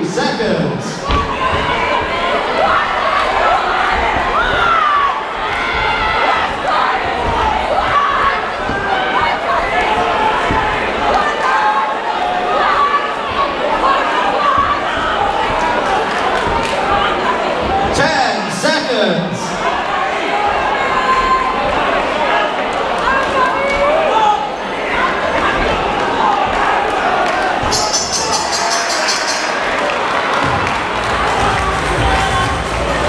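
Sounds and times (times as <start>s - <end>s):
crowd cheering and shouting: 0.0s - 33.0s.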